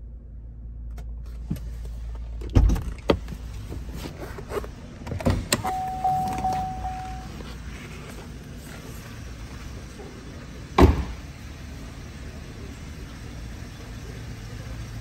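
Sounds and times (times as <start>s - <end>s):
electronic chime tone: 5.6s - 7.4s
knocks and thumps in car: 10.8s - 11.2s.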